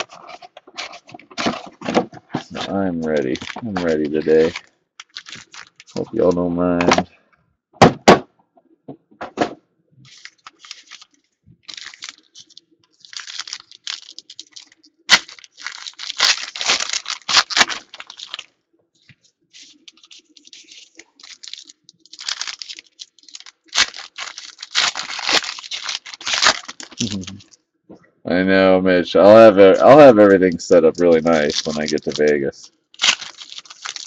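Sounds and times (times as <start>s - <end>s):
wrappers crinkling: 0.0s - 6.4s, 10.0s - 27.6s, 29.3s - 34.0s
card packs ripping open: 0.0s - 7.0s, 10.1s - 18.5s, 19.6s - 27.6s, 29.3s - 34.0s.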